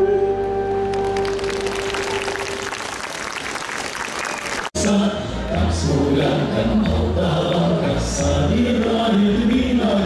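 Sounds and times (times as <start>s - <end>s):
audience applauding: 0.9s - 4.8s.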